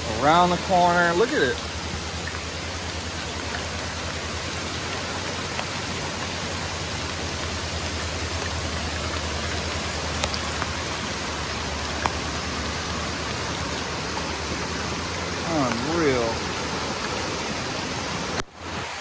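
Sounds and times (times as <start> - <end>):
flooded creek rushing: 0.0 - 19.0
heavy rain on trees and leaves: 0.0 - 19.0.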